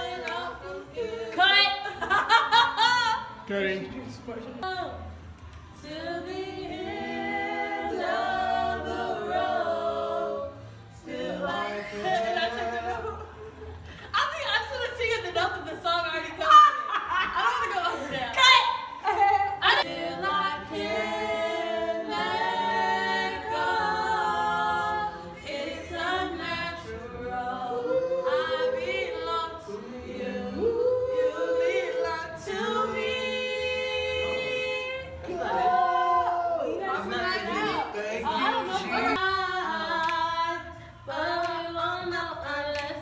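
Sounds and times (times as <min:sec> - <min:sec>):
group singing a cappella: 0:00.0 - 0:03.5, 0:05.0 - 0:43.0.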